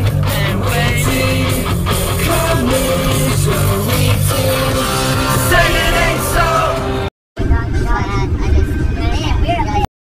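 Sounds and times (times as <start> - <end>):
people talking: 7.5 - 9.9.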